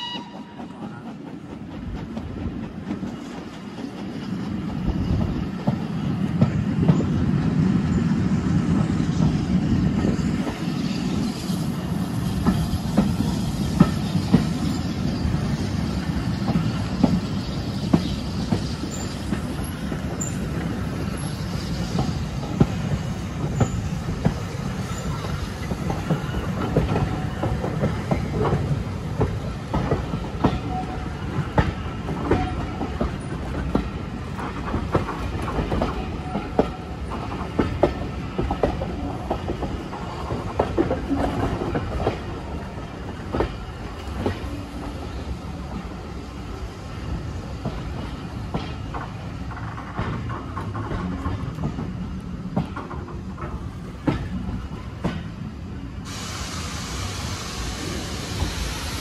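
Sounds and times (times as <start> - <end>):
train wheels rumbling on track: 0.0 - 59.0
wheels clicking over rail joints: 17.9 - 45.0, 47.4 - 55.4.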